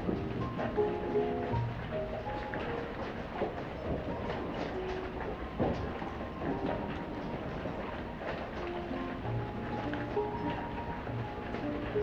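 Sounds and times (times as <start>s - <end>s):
rain pattering: 0.0s - 12.0s.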